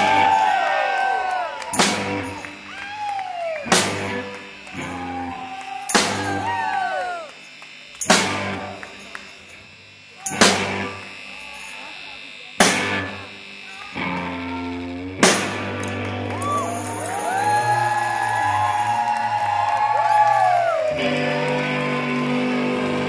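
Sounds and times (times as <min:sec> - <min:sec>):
drum and electric guitar chord hits: 0:01.8 - 0:02.6, 0:03.7 - 0:05.0, 0:08.0 - 0:08.8, 0:10.3 - 0:11.0, 0:12.6 - 0:13.3, 0:15.0 - 0:16.2.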